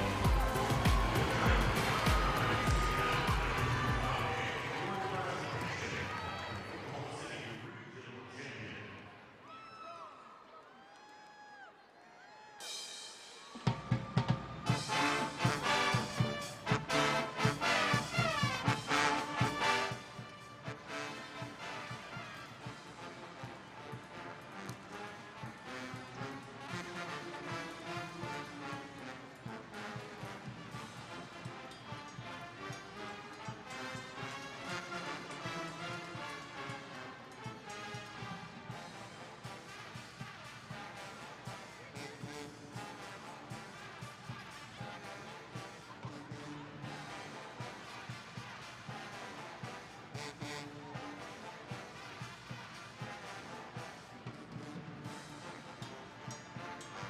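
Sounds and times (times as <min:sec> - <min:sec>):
loud drumming: 0:00.0 - 0:05.0, 0:12.8 - 0:24.2
brass band music: 0:00.0 - 0:07.5, 0:12.6 - 0:57.0.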